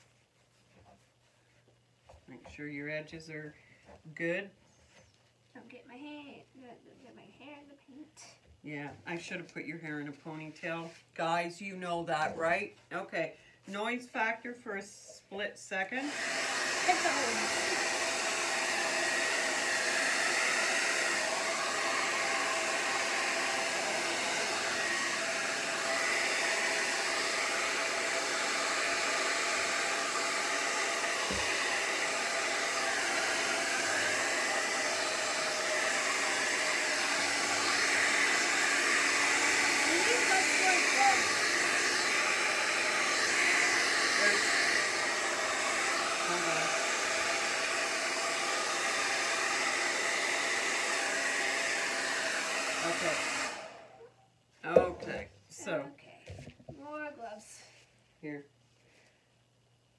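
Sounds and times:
hair dryer blowing: 0:09.1 - 0:14.7, 0:15.7 - 0:56.5.

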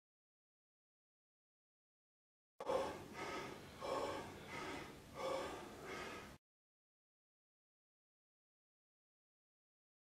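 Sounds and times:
man gasping for breath: 0:02.6 - 0:06.4.

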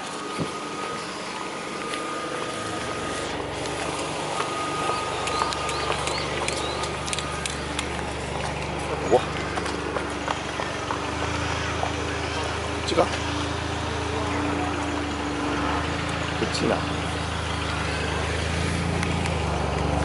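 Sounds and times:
car engine idling: 0:00.0 - 0:20.0
indistinct voices: 0:00.6 - 0:20.0.

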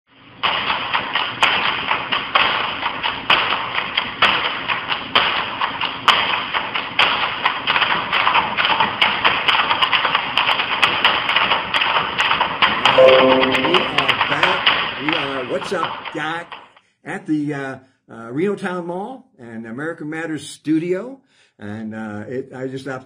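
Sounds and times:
fast percussive tapping clatter: 0:00.4 - 0:12.9, 0:13.7 - 0:16.8.

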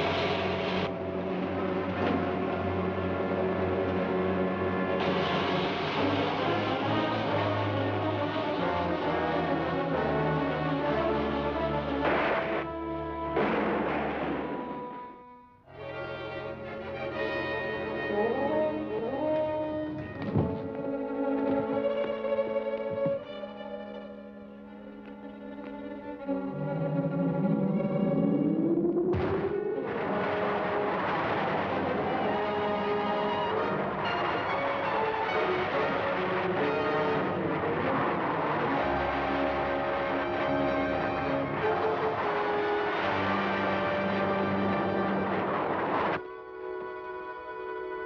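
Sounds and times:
dramatic orchestral score music: 0:00.0 - 0:48.0
rising whine: 0:25.7 - 0:33.7.

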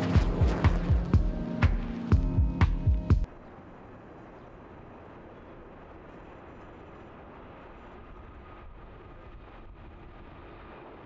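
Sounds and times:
distant jet engine rumble: 0:00.0 - 0:11.0
faint jet engine whine: 0:00.0 - 0:11.0.

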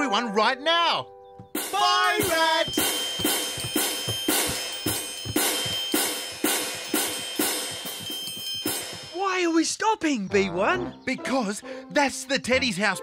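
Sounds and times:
hand cymbals clashing: 0:01.6 - 0:09.2
triangle ringing: 0:01.6 - 0:09.2.

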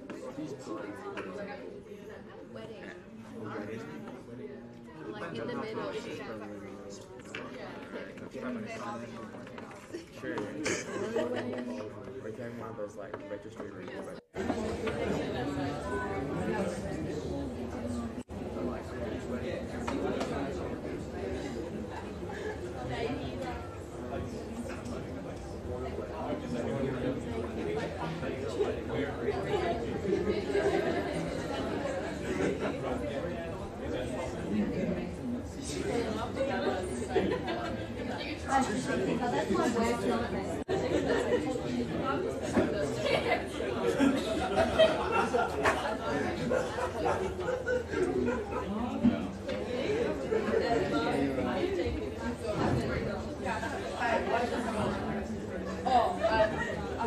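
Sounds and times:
crowd chatter: 0:00.0 - 0:57.0
hubbub of overlapping conversations: 0:00.0 - 0:57.0.

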